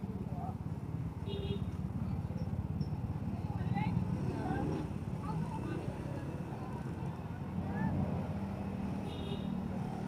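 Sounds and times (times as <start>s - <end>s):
motorcycle engines running: 0.2s - 10.0s.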